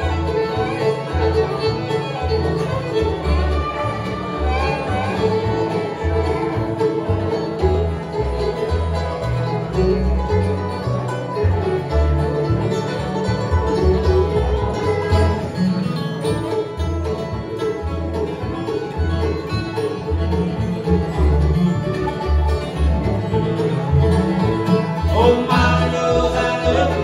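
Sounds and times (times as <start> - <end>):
banjo: 0.0 - 27.0
dobro: 0.0 - 27.0
fiddle: 0.0 - 27.0
guitar: 0.0 - 27.0
upright bass: 0.0 - 27.0
person singing: 25.1 - 27.0.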